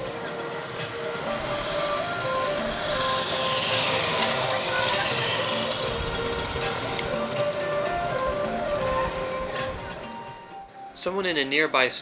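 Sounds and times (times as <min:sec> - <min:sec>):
motor vehicle passing: 0:00.0 - 0:10.4
steady held tones: 0:00.0 - 0:12.0.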